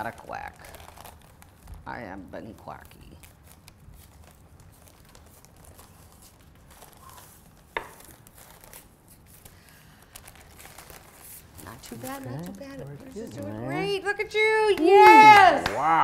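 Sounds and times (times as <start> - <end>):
paper crinkling: 0.0 - 14.2.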